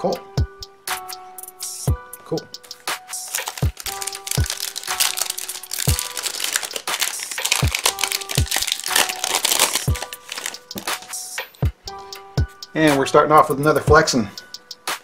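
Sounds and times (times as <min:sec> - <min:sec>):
background music with beat: 0:00.0 - 0:15.0
plastic wrapper crinkling: 0:03.2 - 0:11.1.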